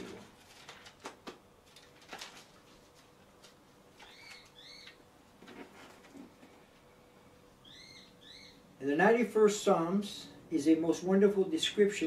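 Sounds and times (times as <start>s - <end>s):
paper pages flicking: 0.0s - 4.6s.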